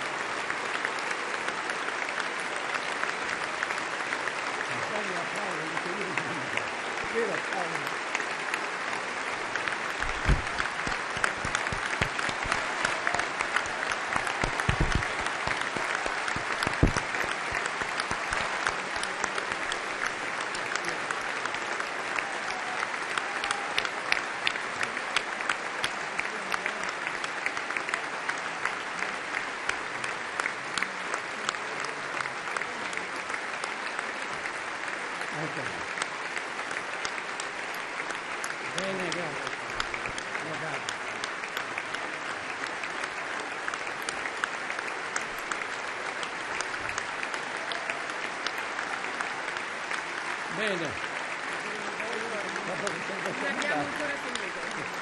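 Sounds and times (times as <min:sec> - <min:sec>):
crowd applauding: 0:00.0 - 0:55.0.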